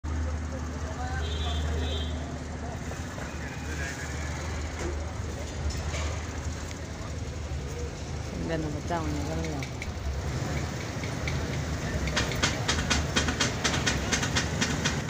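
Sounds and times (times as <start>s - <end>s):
low street rumble: 0.0s - 15.0s.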